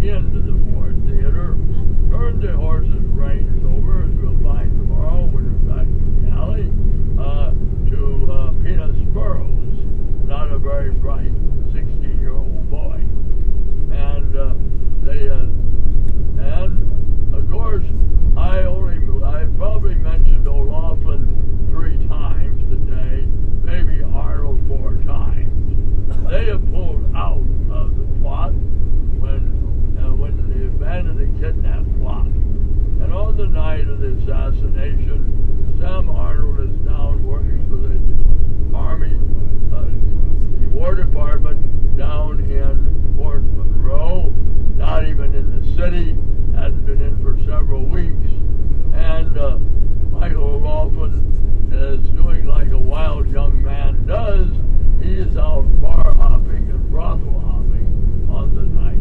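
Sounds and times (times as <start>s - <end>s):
indistinct speech: 0.0s - 13.1s, 13.9s - 15.5s, 16.4s - 25.5s, 26.1s - 28.6s, 29.2s - 32.3s, 33.0s - 35.2s, 35.8s - 38.0s, 38.7s - 49.6s, 50.2s - 59.0s
vehicle rumbling: 0.0s - 59.0s.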